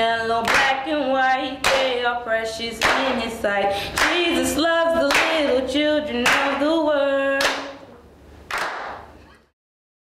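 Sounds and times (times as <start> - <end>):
hand clap: 0.4 - 0.8, 1.6 - 2.0, 2.8 - 3.3, 4.0 - 4.4, 5.0 - 5.6, 6.2 - 6.7, 7.4 - 7.9, 8.5 - 9.2.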